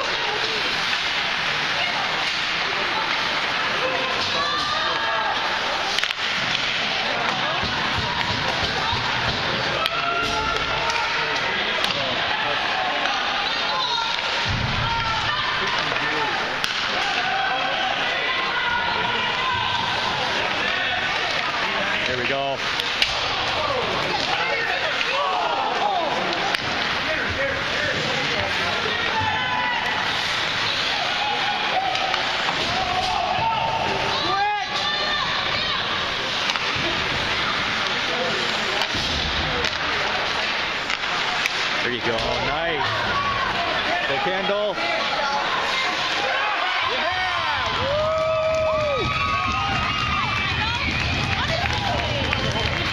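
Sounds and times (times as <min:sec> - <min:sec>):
crowd chatter: 0:00.0 - 0:52.9.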